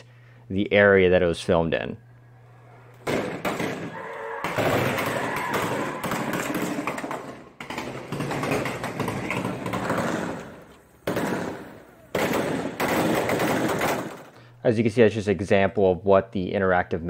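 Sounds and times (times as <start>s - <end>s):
rapid automatic gunfire: 3.0s - 3.9s, 4.5s - 14.4s.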